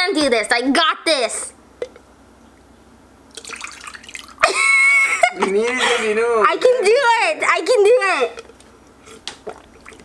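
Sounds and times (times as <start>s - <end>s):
water splashing into bowl: 3.3s - 4.4s, 9.3s - 10.0s.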